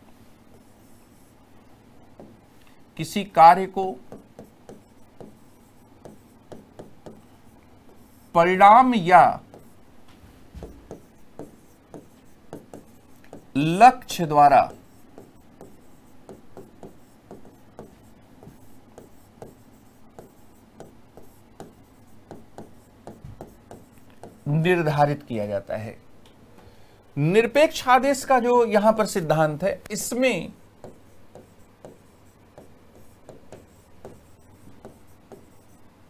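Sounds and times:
pen writing on a board: 0.4 - 1.4, 2.0 - 2.4, 3.6 - 9.9, 10.6 - 24.6, 30.1 - 35.9.

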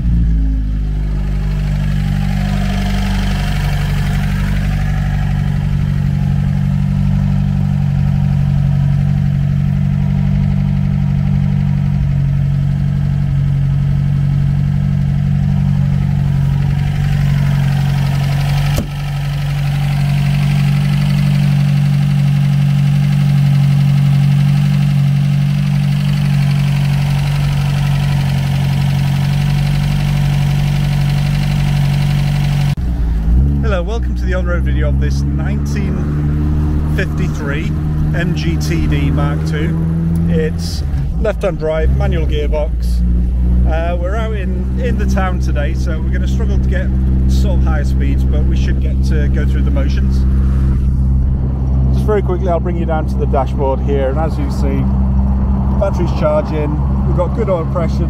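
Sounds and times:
car engine idling: 0.0 - 58.0.

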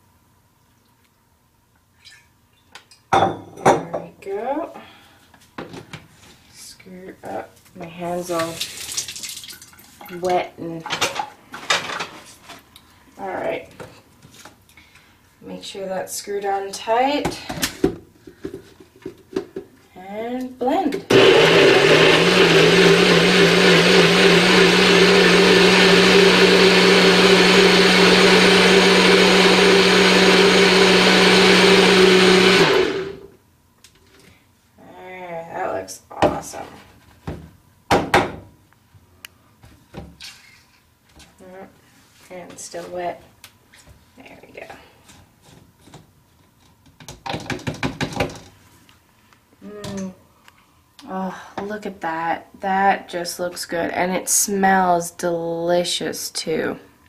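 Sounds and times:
blender running: 21.1 - 33.3.

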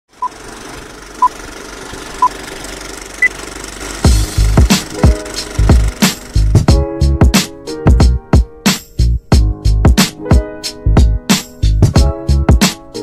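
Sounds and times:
heavy drum beat with bass: 3.9 - 12.6.

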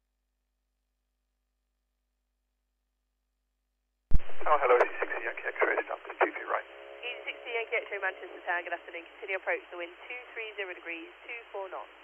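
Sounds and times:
person speaking over radio: 4.5 - 11.8.

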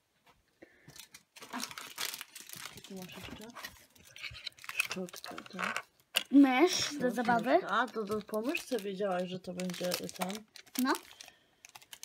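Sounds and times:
plastic wrapper crinkling and tearing: 0.9 - 12.0.

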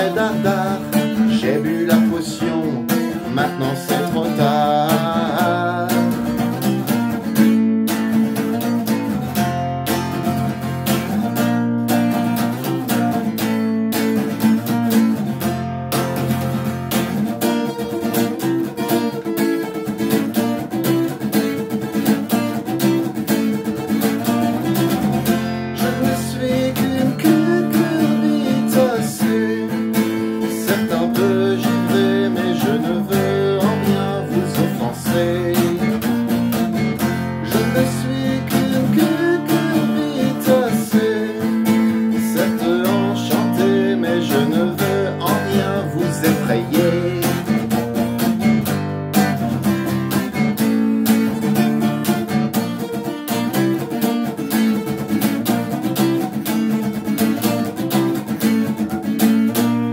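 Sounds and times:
acoustic guitar strumming chords: 0.0 - 59.9.

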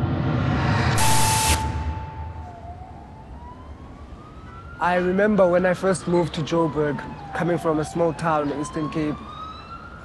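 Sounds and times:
static glitch sound effect: 0.0 - 2.5
city background noise: 0.0 - 10.0
siren tone: 0.1 - 5.1.

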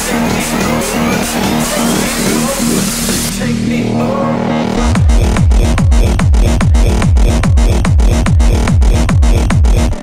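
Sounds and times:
electronic dance music: 0.0 - 10.0
rising synth sweep: 4.0 - 9.9.

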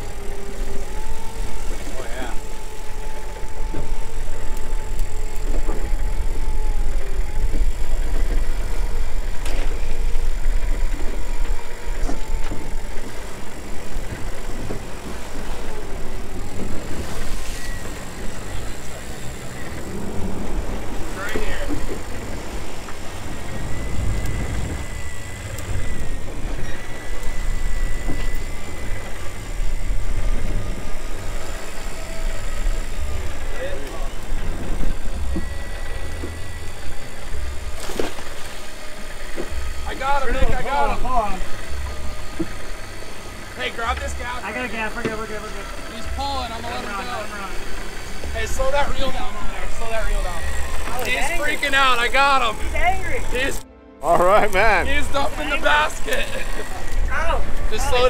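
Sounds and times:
outboard engines running: 0.0 - 58.0
thin wavering whine: 0.0 - 58.0
wind: 0.0 - 58.0.

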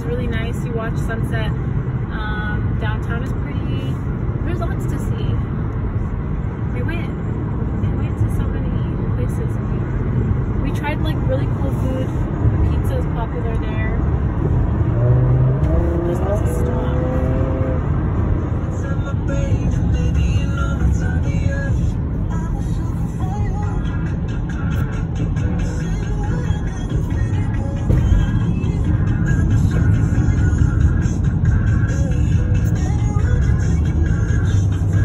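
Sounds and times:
car tyres and engine rumble: 0.0 - 35.0.

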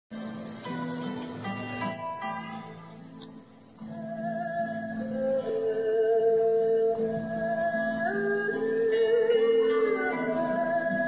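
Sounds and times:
cicadas droning: 0.1 - 11.0
quiet instrumental music: 0.1 - 11.0.

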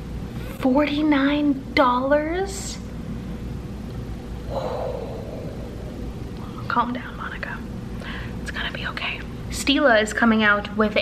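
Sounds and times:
low background hum: 0.0 - 11.0
woman blowing out breath: 4.5 - 6.4.

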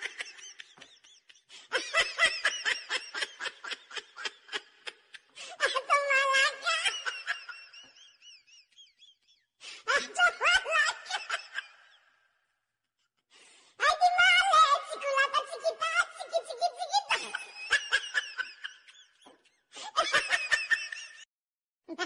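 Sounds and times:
high-pitched laughter: 0.0 - 9.2, 9.8 - 12.1, 13.9 - 21.3.

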